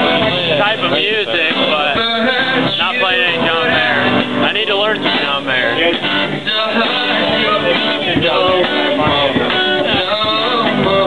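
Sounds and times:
acoustic guitar: 0:00.0 - 0:11.0
person singing: 0:00.0 - 0:11.0.

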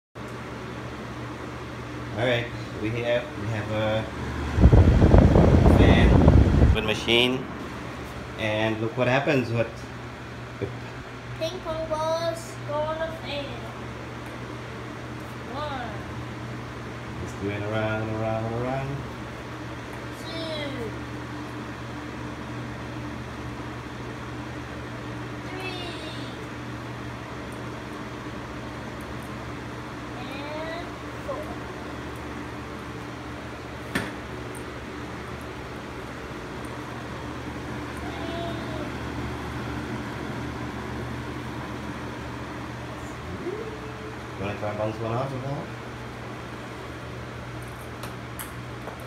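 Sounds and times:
fan running: 0:00.1 - 0:49.0.

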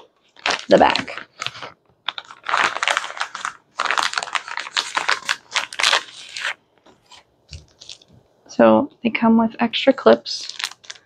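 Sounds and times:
plastic bag crinkling: 0:00.2 - 0:08.2, 0:10.2 - 0:11.0.

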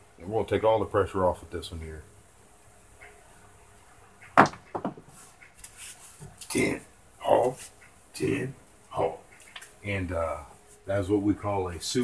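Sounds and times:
dice striking table: 0:04.4 - 0:05.0.

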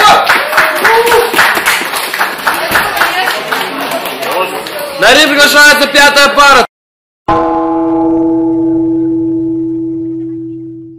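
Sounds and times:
metallic bell tone ringing: 0:07.3 - 0:10.9.

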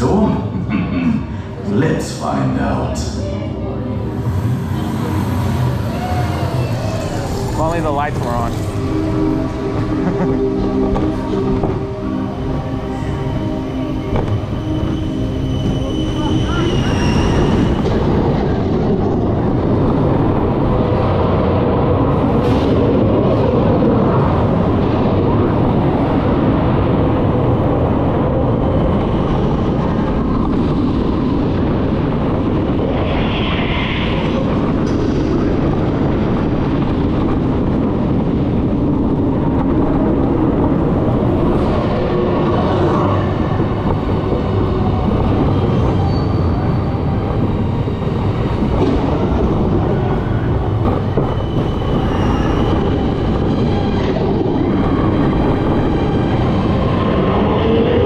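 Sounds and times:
roller coaster rumbling on track: 0:00.0 - 0:58.0.

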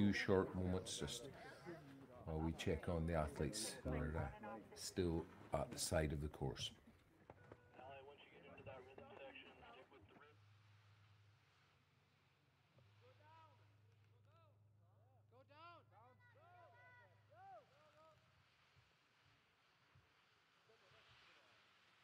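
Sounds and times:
faint background voices: 0:00.0 - 0:10.2.

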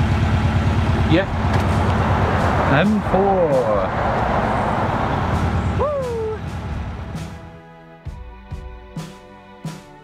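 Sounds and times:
motorway traffic roar: 0:00.0 - 0:07.6.

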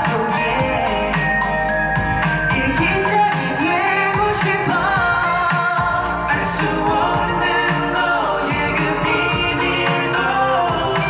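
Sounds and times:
dance-pop song with male vocals: 0:00.0 - 0:11.0.

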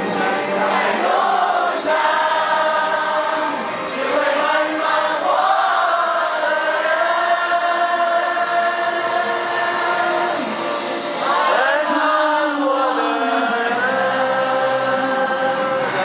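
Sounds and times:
group singing together: 0:00.0 - 0:16.0.

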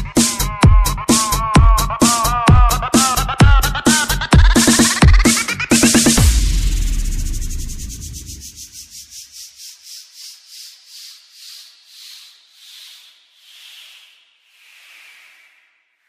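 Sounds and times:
electronic dance bass: 0:00.0 - 0:09.1
pulsing noise sweep: 0:00.0 - 0:09.5.

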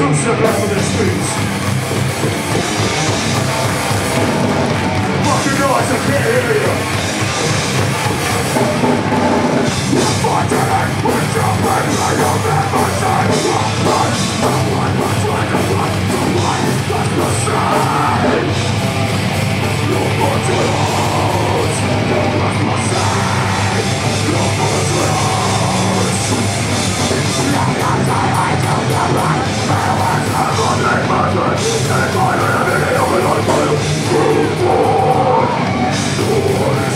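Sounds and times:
distorted electric guitars: 0:00.0 - 0:36.9
heavy metal band playing live: 0:00.0 - 0:36.9
pounding drum kit: 0:00.0 - 0:36.9.

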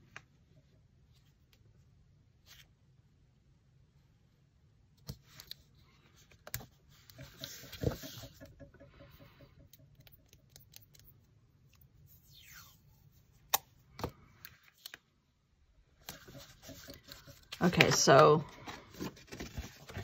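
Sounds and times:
tape rubbed onto paper: 0:12.0 - 0:13.1.

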